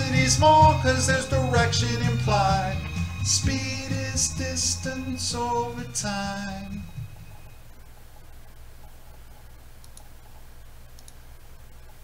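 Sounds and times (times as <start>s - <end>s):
low electrical hum: 0.0s - 12.0s
computer mouse clicks: 7.8s - 12.0s.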